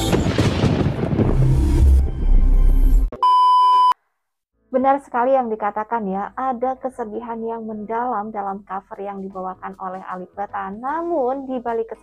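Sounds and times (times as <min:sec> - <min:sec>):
test-tone beep: 0:03.2 - 0:04.0
woman speaking: 0:04.8 - 0:12.0.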